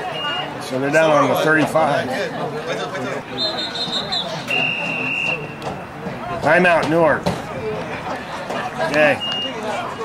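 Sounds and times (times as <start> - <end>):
referee's whistle blasts: 0.0 - 0.5, 3.4 - 5.6, 9.2 - 9.6.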